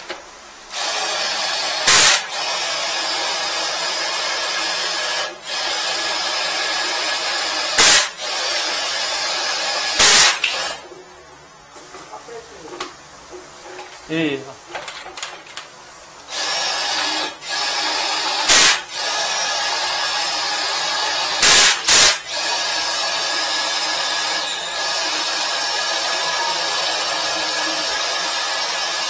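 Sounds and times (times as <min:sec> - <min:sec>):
high-pressure hose spraying water: 0:00.7 - 0:10.8, 0:16.3 - 0:29.0.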